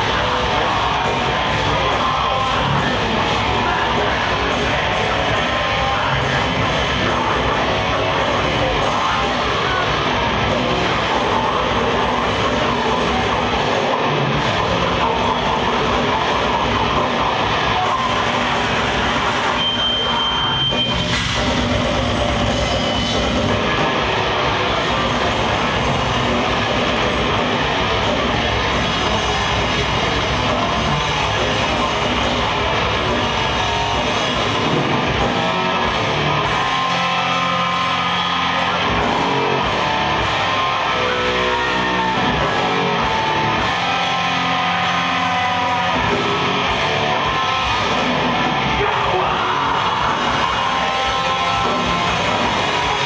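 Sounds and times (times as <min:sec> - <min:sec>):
death metal band playing live: 0:00.0 - 0:53.0.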